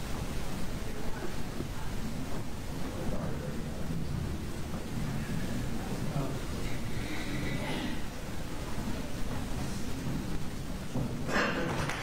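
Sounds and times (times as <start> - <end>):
indistinct chatter: 0.0 - 12.0
low room rumble: 0.0 - 12.0.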